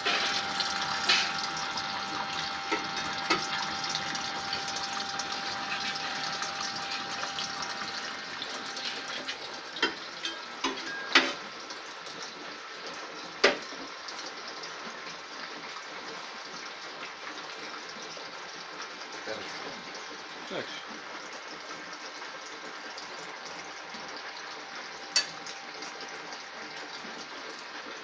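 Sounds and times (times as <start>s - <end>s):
water rushing through pump: 0.0s - 28.0s.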